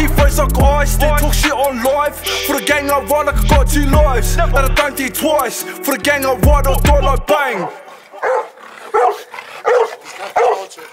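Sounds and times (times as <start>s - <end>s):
dog barking: 7.6s - 10.9s.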